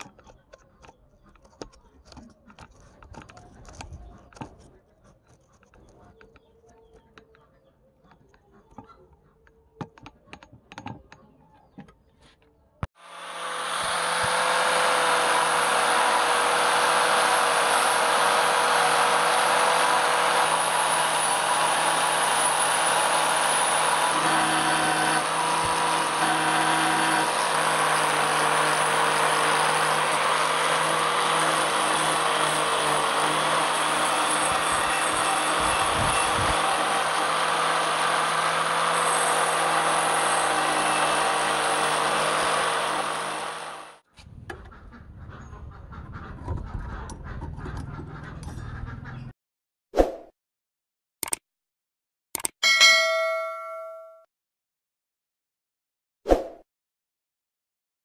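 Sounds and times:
angle grinder grinding steel: 0:13.0 - 0:44.0.

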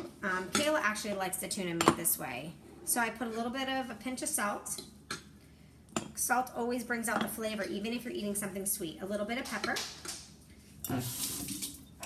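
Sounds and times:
kitchen tap running: 0:10.9 - 0:12.0.

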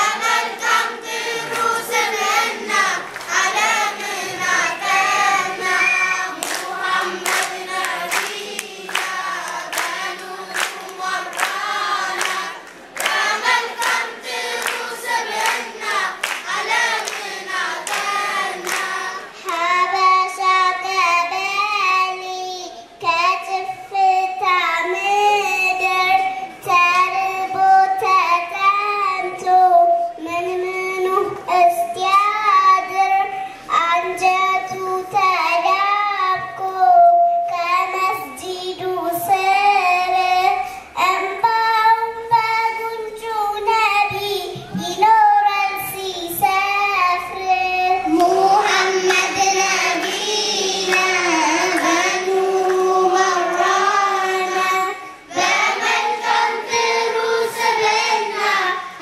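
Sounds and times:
children singing devotional song: 0:00.0 - 0:59.0.

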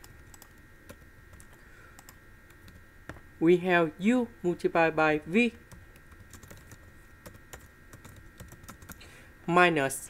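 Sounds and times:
computer keyboard keys clicking: 0:00.0 - 0:02.8, 0:05.7 - 0:09.0.

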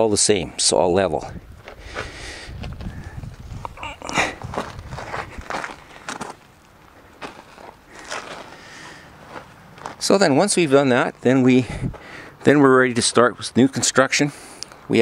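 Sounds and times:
footsteps crunching on gravel: 0:01.6 - 0:15.0.

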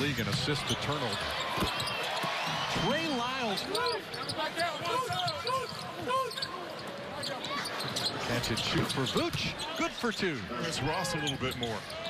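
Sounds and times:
murmur of arena crowd: 0:00.0 - 0:12.0
shoes squeaking on hardwood court: 0:00.2 - 0:02.6, 0:03.4 - 0:10.3.

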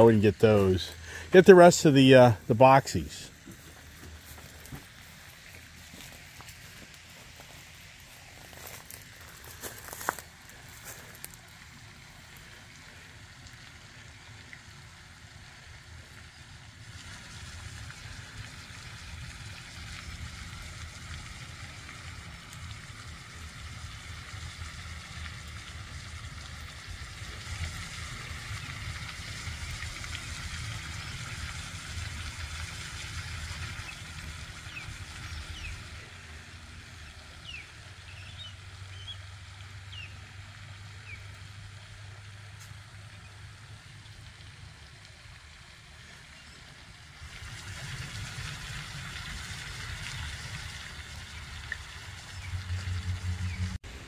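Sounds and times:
fountain spray splashing: 0:00.0 - 0:54.0
low uneven rumble: 0:00.0 - 0:54.0.

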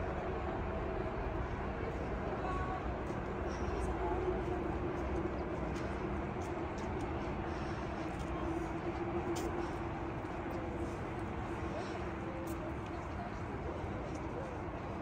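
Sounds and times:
low outdoor drone: 0:00.0 - 0:15.0.

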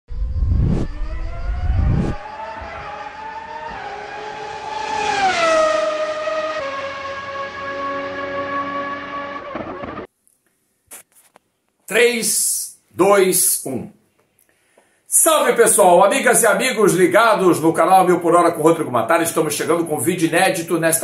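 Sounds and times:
loud low rumbles: 0:00.1 - 0:02.3
race car engine note: 0:00.2 - 0:10.1.

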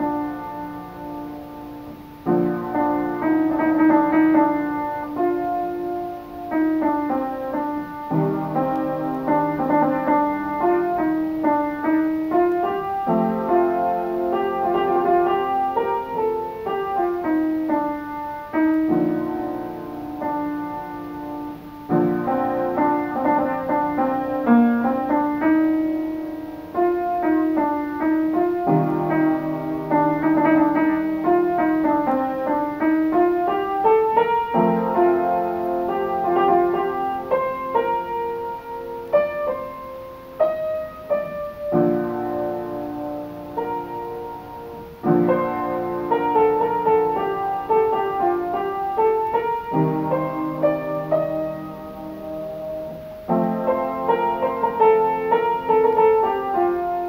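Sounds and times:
solo piano piece: 0:00.0 - 0:57.0.

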